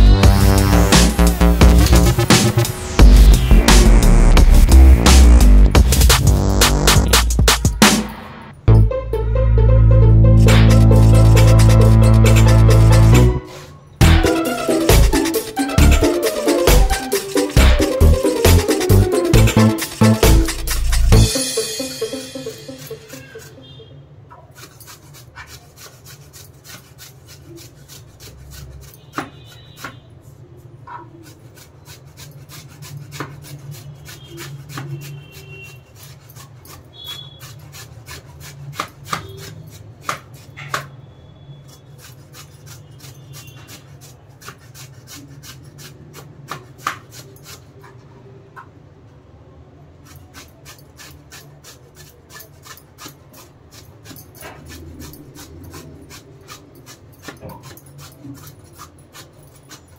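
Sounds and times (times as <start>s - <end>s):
pumpkin grated on metal grater: 10.7s - 13.2s, 14.0s - 23.6s, 24.3s - 40.8s, 41.6s - 47.8s, 50.0s - 59.9s.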